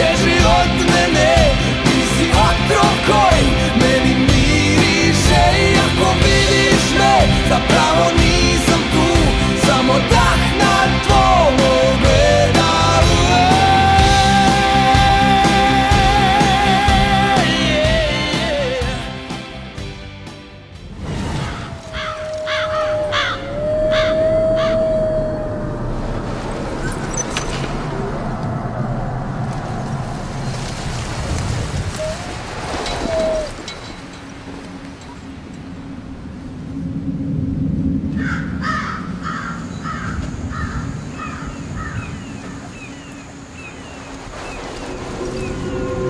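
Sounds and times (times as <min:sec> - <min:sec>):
bird calling: 0:21.6 - 0:25.8, 0:31.9 - 0:34.1, 0:38.2 - 0:46.0
low steady drone: 0:21.7 - 0:31.4, 0:44.2 - 0:46.0
crows cawing: 0:21.9 - 0:24.9, 0:38.2 - 0:42.1
steady held tone: 0:45.0 - 0:46.0.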